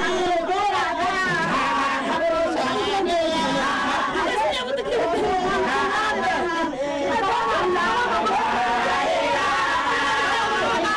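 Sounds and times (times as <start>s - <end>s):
people talking over one another: 0.0s - 10.9s.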